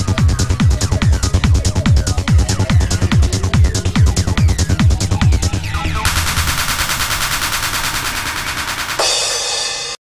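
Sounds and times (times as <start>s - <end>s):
psytrance music with rapid rattle: 0.0s - 10.0s.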